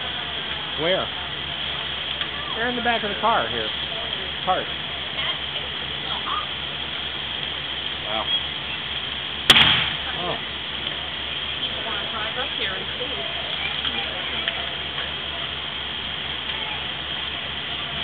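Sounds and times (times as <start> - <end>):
distant voices: 0.0 - 18.0
sharp bang with echo: 9.5 - 10.1.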